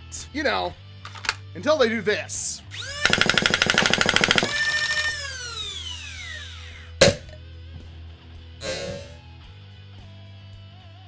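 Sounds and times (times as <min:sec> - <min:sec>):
motor whine: 0:02.7 - 0:07.0
dart blaster firing: 0:02.9 - 0:05.3.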